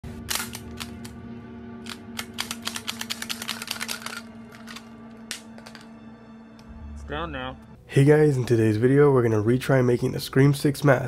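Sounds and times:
low drone: 0:00.0 - 0:08.0.

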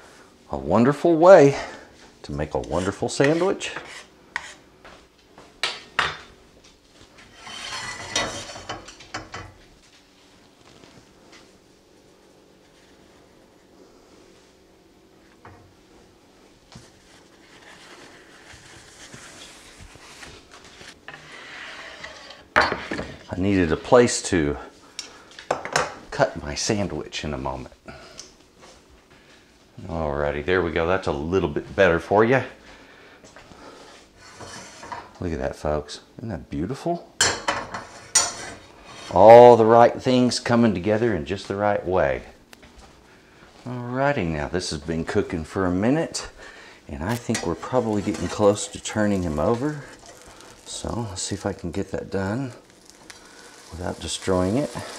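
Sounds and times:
knife scraping on cutting board: 0:02.8 - 0:04.6, 0:07.2 - 0:08.8, 0:34.2 - 0:35.0, 0:47.1 - 0:48.8
sandwich sizzling in skillet: 0:47.8 - 0:54.9.

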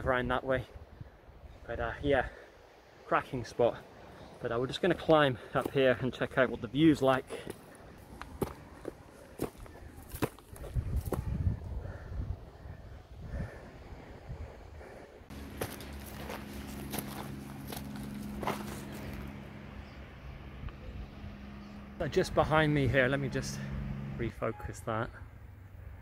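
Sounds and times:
footsteps on dry grass and rock: 0:07.1 - 0:11.5, 0:15.3 - 0:19.4
steady low hum: 0:07.2 - 0:24.2.

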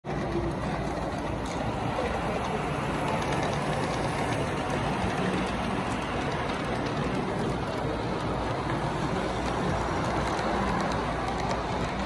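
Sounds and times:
model train wheels rumbling on rail: 0:00.1 - 0:12.0.

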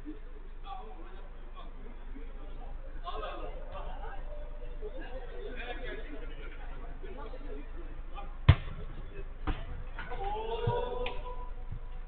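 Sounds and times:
football kicked thud: 0:08.5 - 0:09.9.

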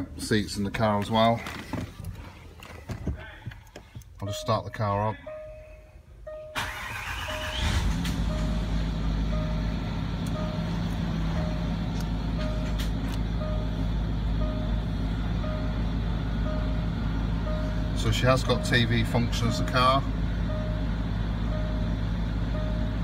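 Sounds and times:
car engine starting and idling: 0:00.0 - 0:23.0
electronic warning chime: 0:04.2 - 0:12.8, 0:13.4 - 0:23.0.

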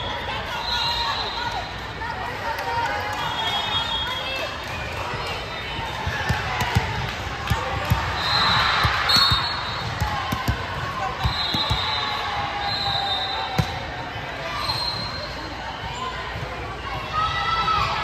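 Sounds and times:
sneakers squeaking: 0:05.8 - 0:16.6.

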